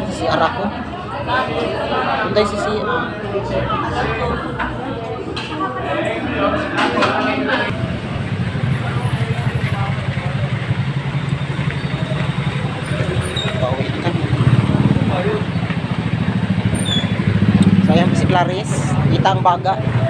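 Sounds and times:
faint voices: 0.0s - 20.0s
vehicle engine running: 7.7s - 20.0s.

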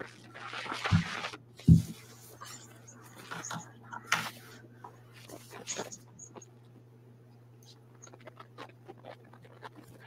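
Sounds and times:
steady low hum: 0.0s - 10.0s
faint clicks and rustles: 0.6s - 10.0s.

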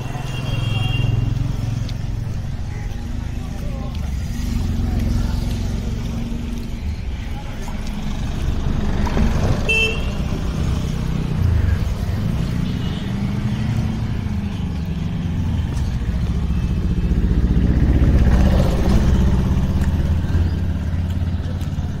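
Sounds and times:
vehicle engine rumbling: 0.0s - 22.0s.

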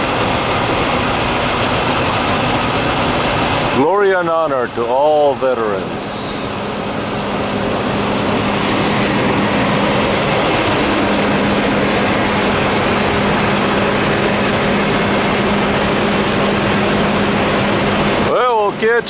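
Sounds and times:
heavy engine droning: 0.0s - 19.0s.

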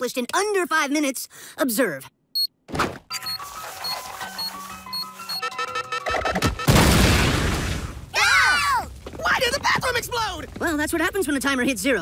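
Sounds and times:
short high beeps: 3.1s - 6.0s
hurried cartoon music: 3.1s - 6.8s
loud explosion boom: 6.7s - 8.2s.

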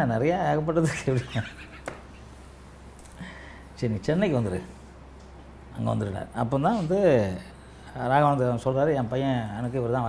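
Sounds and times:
man laughing: 0.8s - 2.0s.

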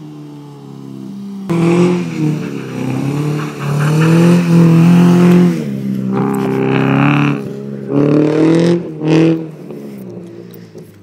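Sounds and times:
car engine revving: 1.4s - 10.4s.

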